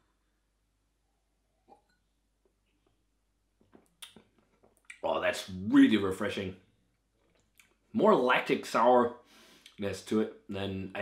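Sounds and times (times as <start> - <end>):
person sipping and swallowing: 1.5 - 3.0.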